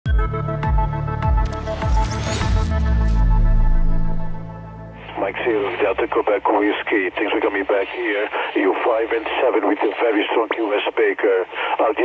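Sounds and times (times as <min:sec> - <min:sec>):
radio voice through speaker: 0:05.0 - 0:12.0.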